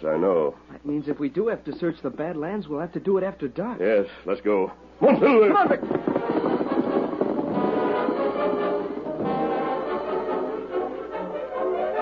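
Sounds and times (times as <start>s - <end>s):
orchestral brass music: 6.0s - 12.0s.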